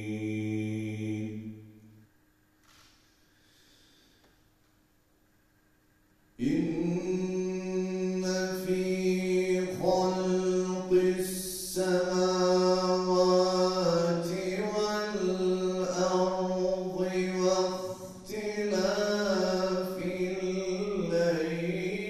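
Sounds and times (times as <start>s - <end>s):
man chanting into a microphone: 6.4s - 22.0s.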